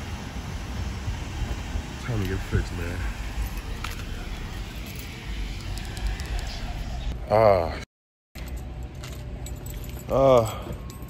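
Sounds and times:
low rumble: 0:00.0 - 0:07.8
keys jingling: 0:08.4 - 0:11.0.

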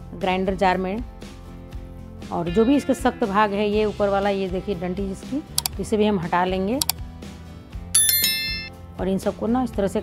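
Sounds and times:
soft background music: 0:02.3 - 0:07.0
bright bell ding: 0:08.0 - 0:08.7.

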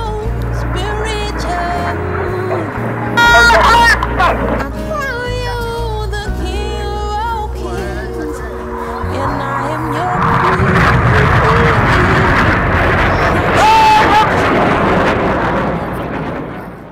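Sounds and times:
music over public address: 0:00.0 - 0:14.6
jets passing overhead: 0:00.0 - 0:16.9.

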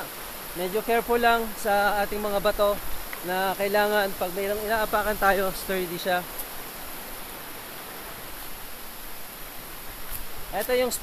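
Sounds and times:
river rushing over stones: 0:00.0 - 0:11.0.

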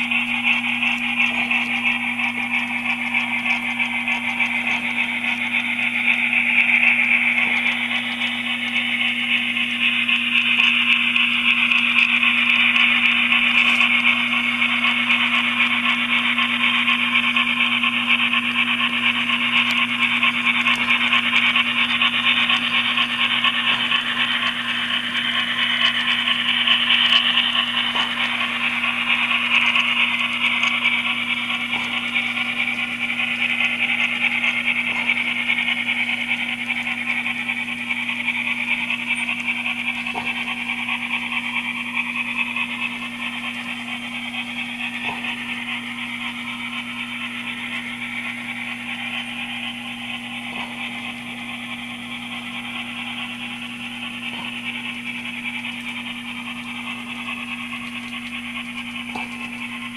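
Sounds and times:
model train motors whirring: 0:00.0 - 0:59.9.

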